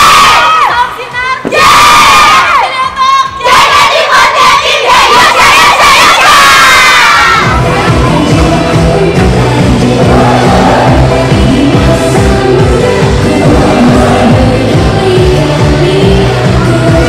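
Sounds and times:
women shouting a chant: 0.0 - 8.2
pop music with steady beat: 7.4 - 17.0.

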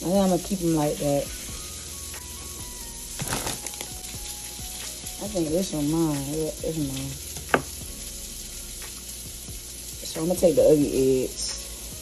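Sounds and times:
faint background music: 0.0 - 12.0
steady hiss: 0.0 - 12.0.

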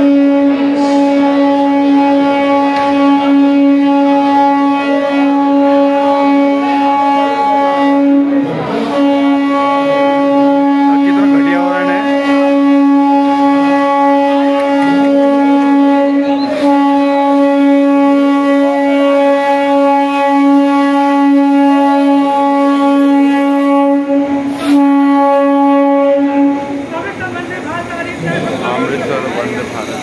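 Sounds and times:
train horn long note: 0.0 - 29.8.

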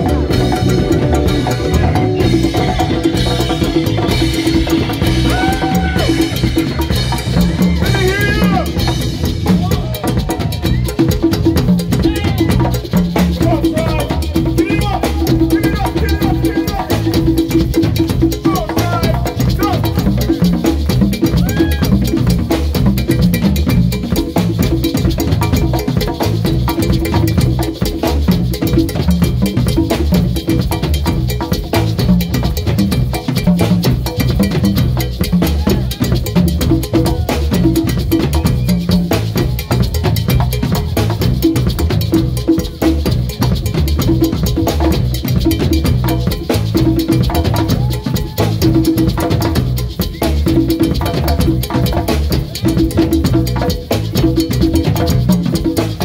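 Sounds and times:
congas: 0.0 - 56.0
drum kit: 0.0 - 56.0.

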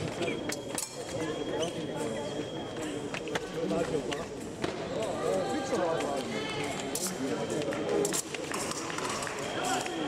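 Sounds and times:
indistinct voices in hall: 0.0 - 10.0.

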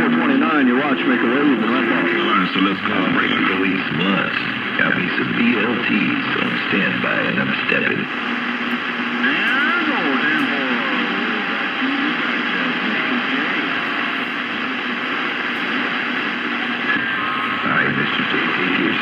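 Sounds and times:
garbled radio voices: 0.0 - 19.0
radio static hiss: 0.0 - 19.0.

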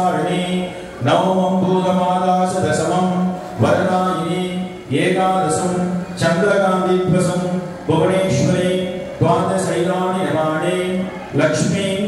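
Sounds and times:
man chanting mantras: 0.0 - 12.0.

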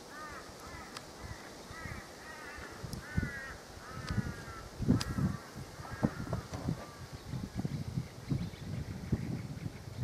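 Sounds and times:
bird calling: 0.0 - 10.0.

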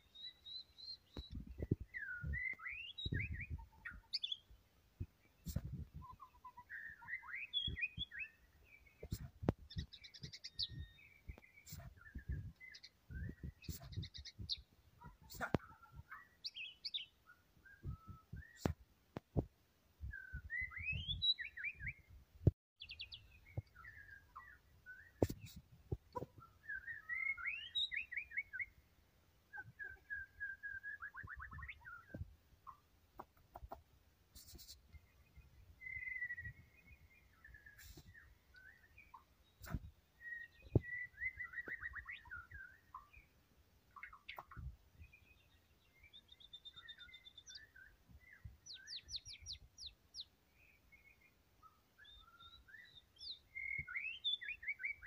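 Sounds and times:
songbird singing: 0.0 - 55.0.

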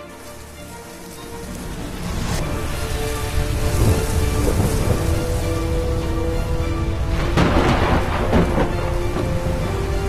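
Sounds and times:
held musical notes: 0.0 - 10.0
steady rain: 0.0 - 10.0
low thunder rumble: 2.0 - 10.0.

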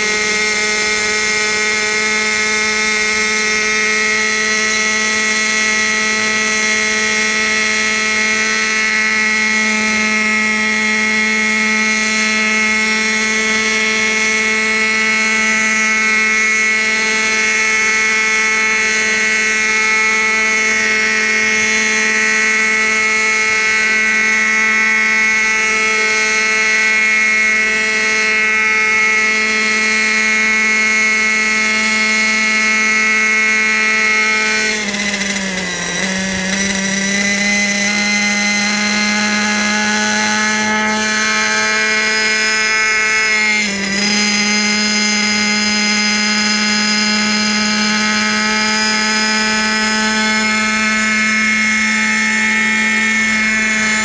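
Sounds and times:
model helicopter engine whine: 0.0 - 54.0.

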